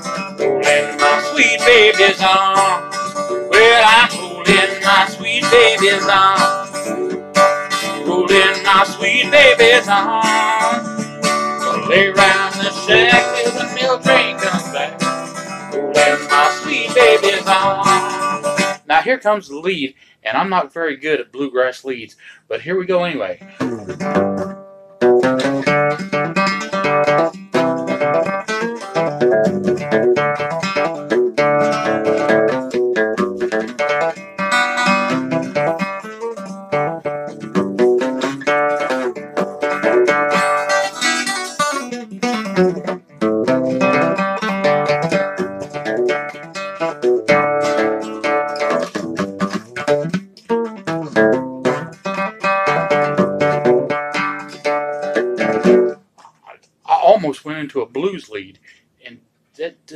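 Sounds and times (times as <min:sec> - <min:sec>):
acoustic guitar picking: 0:00.0 - 0:59.2.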